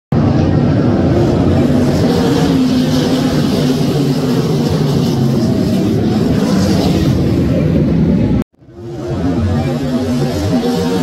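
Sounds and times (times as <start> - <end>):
race car engines droning: 0.1 - 11.0.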